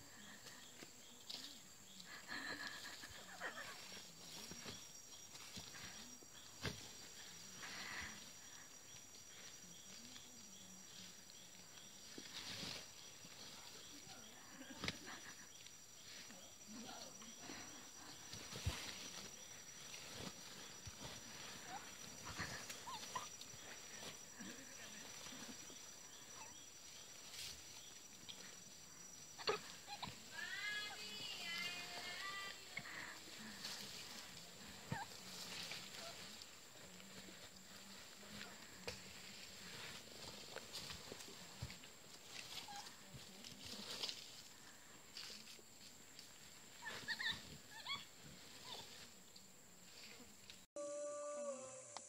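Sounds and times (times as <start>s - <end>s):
steady high-pitched whine: 0.0s - 52.0s.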